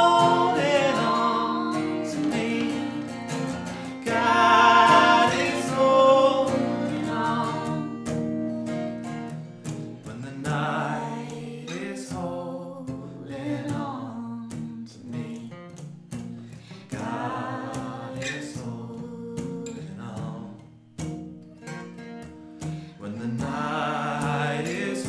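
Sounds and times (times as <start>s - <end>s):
woman and man singing together: 0.0s - 8.2s, 10.0s - 15.7s, 16.7s - 20.7s, 23.0s - 25.0s
acoustic guitars strummed: 0.0s - 25.0s.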